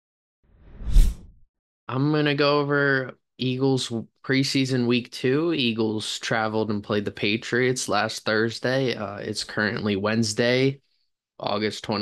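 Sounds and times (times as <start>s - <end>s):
whoosh sound effect: 0.6s - 1.4s.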